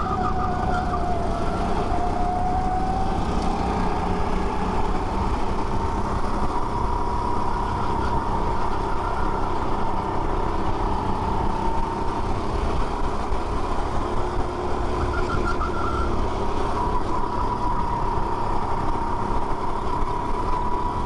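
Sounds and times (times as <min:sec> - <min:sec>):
go-kart engine racing: 0:00.0 - 0:21.0
wind and road noise: 0:00.0 - 0:21.0.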